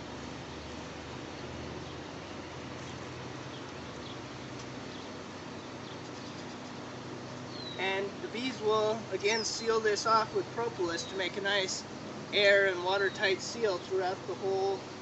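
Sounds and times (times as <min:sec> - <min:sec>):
outdoor noise hiss: 0:00.0 - 0:15.0.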